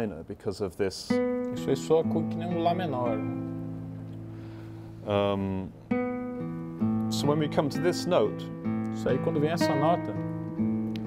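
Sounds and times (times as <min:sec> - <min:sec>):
nylon-string guitar: 0:01.0 - 0:11.0.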